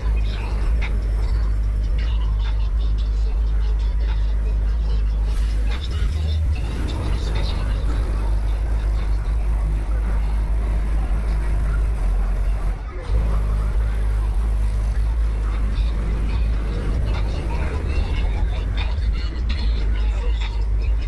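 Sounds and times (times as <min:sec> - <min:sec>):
car engine running: 0:00.0 - 0:21.0
people talking: 0:00.0 - 0:21.0.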